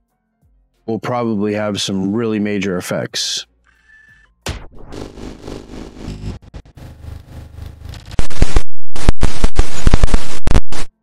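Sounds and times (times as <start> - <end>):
glitchy digital noise: 4.7 - 11.0.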